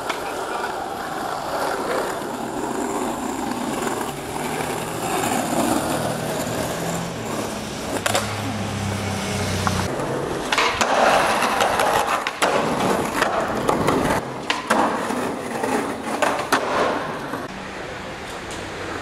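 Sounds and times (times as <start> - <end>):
skateboard clack: 0.0 - 8.6, 9.6 - 17.5
skateboard wheels rolling on asphalt: 0.0 - 19.0
passing vehicle engine hum: 3.1 - 10.5.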